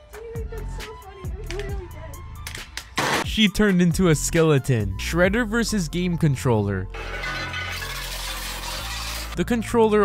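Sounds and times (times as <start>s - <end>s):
shredder blades grinding plastic: 7.0s - 9.4s.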